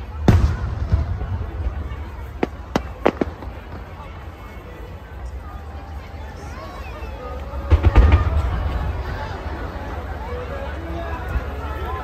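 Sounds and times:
fireworks cracking: 0.0s - 4.4s, 7.6s - 10.0s.

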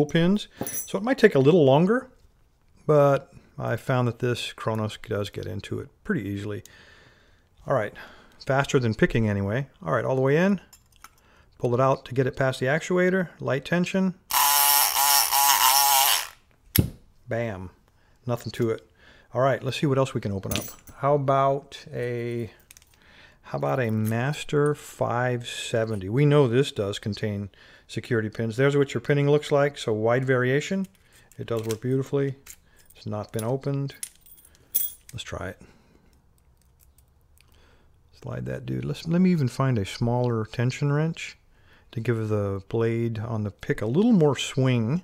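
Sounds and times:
electric pick gun buzzing: 14.3s - 16.4s.

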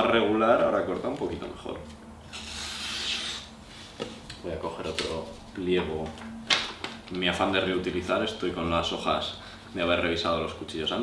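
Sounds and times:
knife slicing paper: 2.3s - 3.5s.

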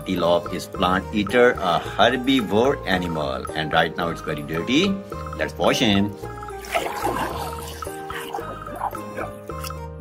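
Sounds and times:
ambient music with sustained chords: 1.3s - 10.0s
toys swished through water: 6.5s - 9.7s.

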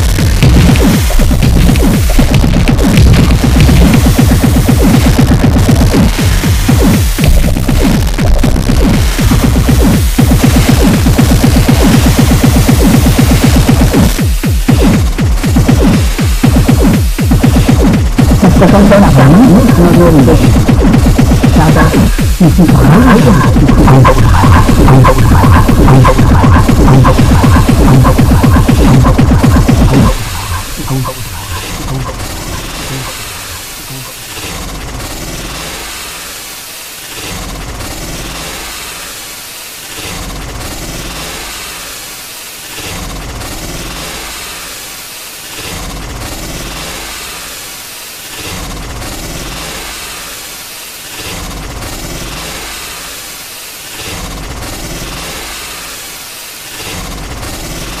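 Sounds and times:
low rumble: 0.0s - 14.2s, 14.8s - 35.2s
harsh machine-like noise: 0.0s - 58.0s.

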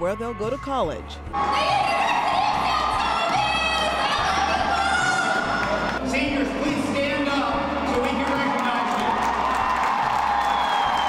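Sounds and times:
music playing: 0.0s - 11.0s
crowd cheering: 1.3s - 11.0s.

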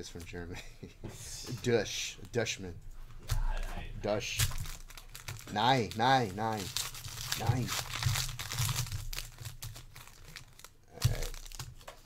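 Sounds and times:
foil pack crinkling: 4.1s - 12.0s.

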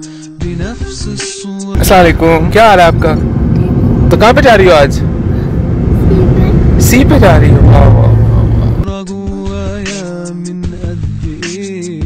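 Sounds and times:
road noise inside car: 1.8s - 8.9s
car engine rumble: 1.8s - 9.0s.

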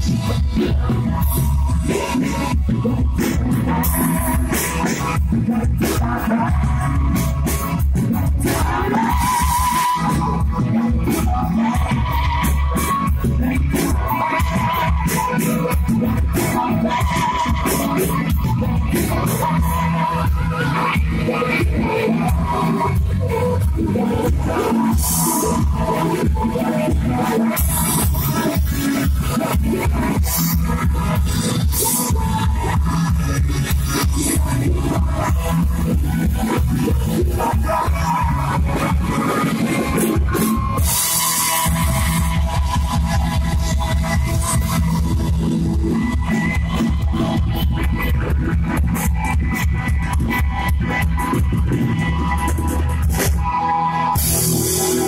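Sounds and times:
bass guitar: 0.0s - 55.0s
live rock band playing: 0.0s - 55.0s.

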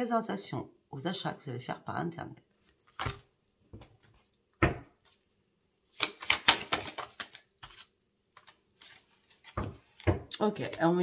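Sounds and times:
cards being shuffled: 5.9s - 11.0s.

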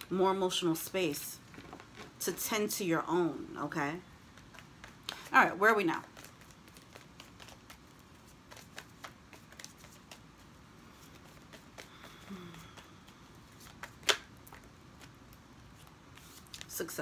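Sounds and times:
cards being shuffled: 4.3s - 17.0s
card snap: 13.7s - 14.3s.

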